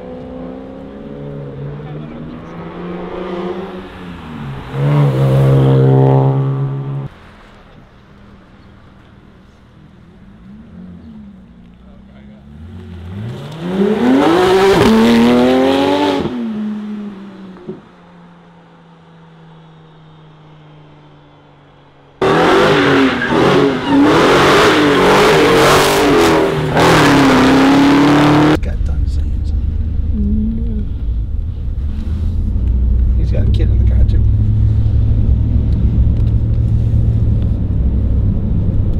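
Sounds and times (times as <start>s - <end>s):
sports car accelerating: 0.0s - 38.9s
car engine revving loudly: 12.5s - 17.2s, 22.2s - 30.1s
car interior rumble: 16.6s - 38.9s.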